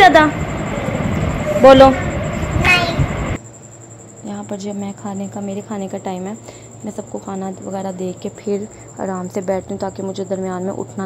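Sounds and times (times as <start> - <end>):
faint high steady whine: 0.0 - 11.0
low rumble of room noise: 0.0 - 11.0.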